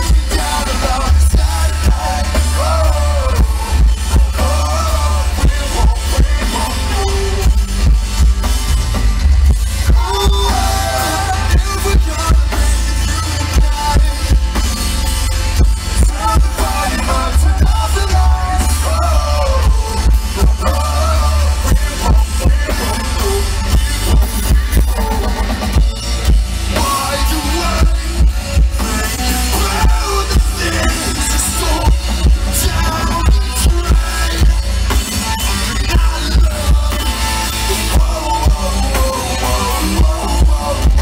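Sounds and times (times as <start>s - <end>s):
man singing: 0.0s - 8.3s, 9.8s - 25.7s, 26.7s - 41.0s
bass guitar: 0.0s - 41.0s
drums: 0.0s - 41.0s.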